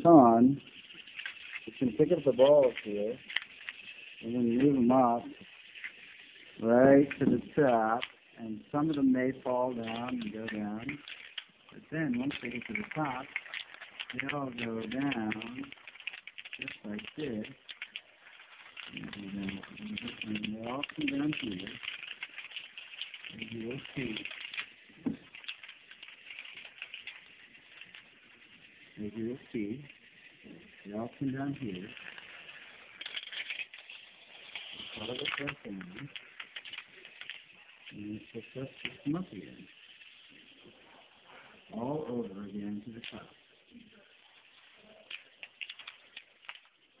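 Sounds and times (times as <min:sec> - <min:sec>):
plastic balls rattling down tracks: 0:00.0 - 0:47.0.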